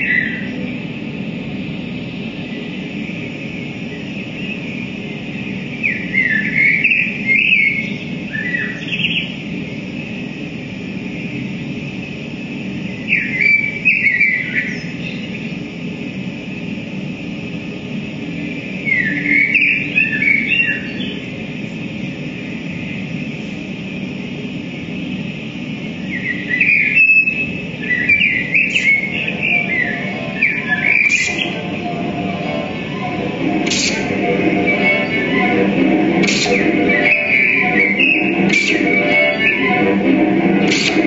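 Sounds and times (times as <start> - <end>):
bird-like electronic chirping glides: 0.0 - 1.2, 1.9 - 10.2, 12.7 - 15.9, 17.4 - 41.0
steady hiss and low hum: 0.0 - 41.0.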